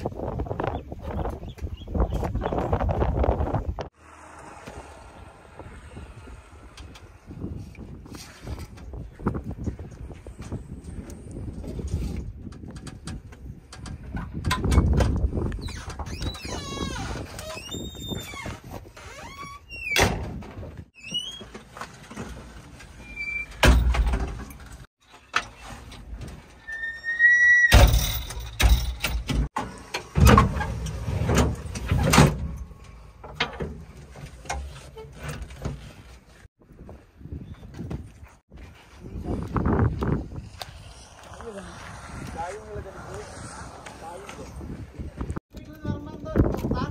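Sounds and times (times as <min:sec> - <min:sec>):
squeaking hinges: 0:15.6 - 0:20.2, 0:20.9 - 0:36.1.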